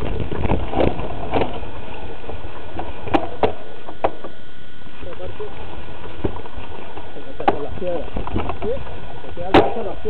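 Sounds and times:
muffled voices: 4.9s - 10.0s.

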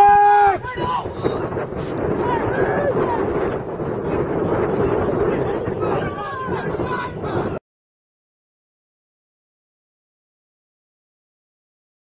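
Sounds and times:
faint shouts of players: 0.0s - 1.4s
wind buffeting microphone: 0.0s - 7.6s.

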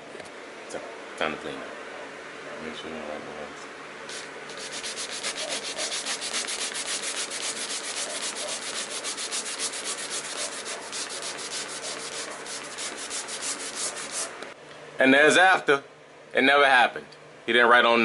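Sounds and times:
hand scrubbing textured wall: 4.1s - 14.4s.

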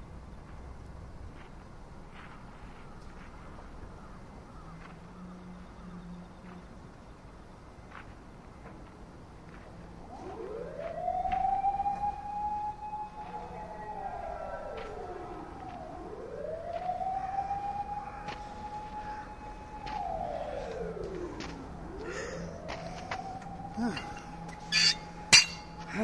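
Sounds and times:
siren wailing: 9.7s - 26.0s.

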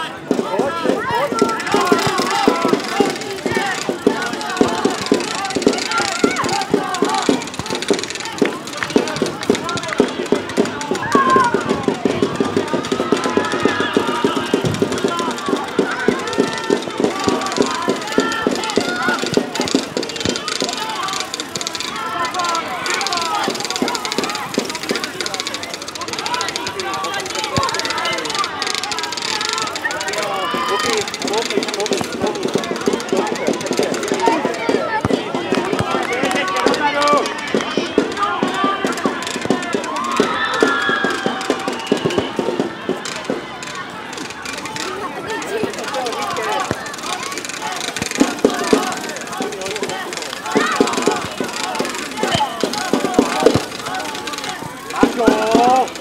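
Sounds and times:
distant children shouting: 0.0s - 56.0s
rapid dull knocks: 0.3s - 43.4s, 44.1s - 56.0s.

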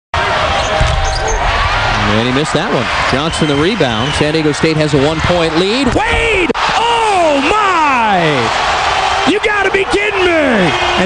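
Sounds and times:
arena crowd noise: 0.1s - 11.0s.

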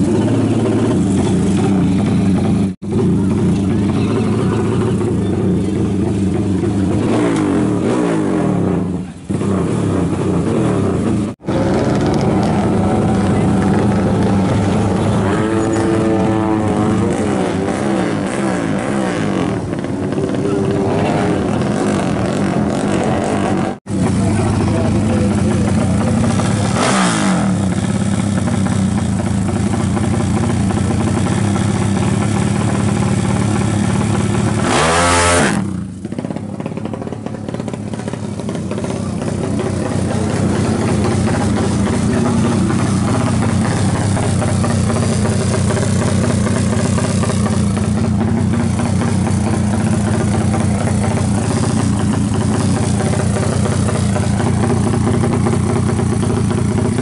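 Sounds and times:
motorcycle engine idling and revving: 0.0s - 57.0s.

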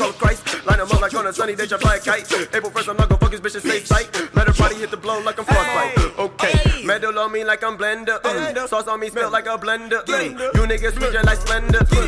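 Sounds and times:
rapping over a beat: 0.0s - 12.0s.

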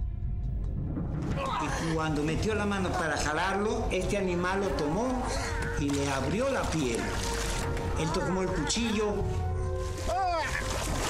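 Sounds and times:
man talking: 1.6s - 7.2s, 8.0s - 9.4s.

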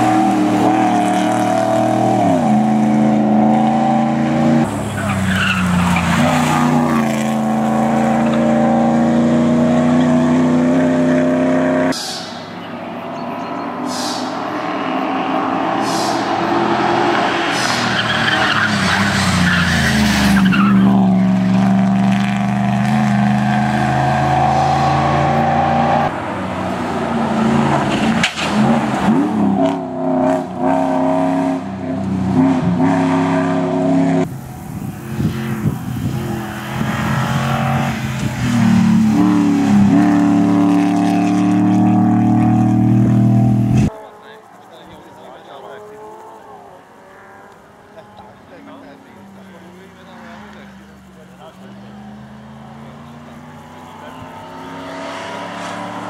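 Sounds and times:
rally car engines at high revs: 0.0s - 56.0s.

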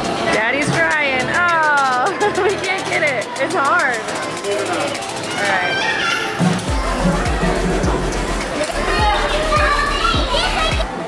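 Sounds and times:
background music with steady beat: 0.0s - 5.7s, 6.4s - 11.0s
children's voices and chatter: 0.0s - 11.0s.

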